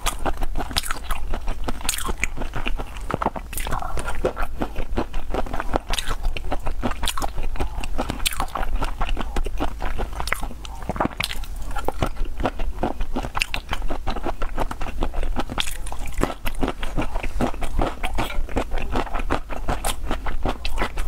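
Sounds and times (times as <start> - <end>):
wet chewing and smacking: 0.0 - 21.0.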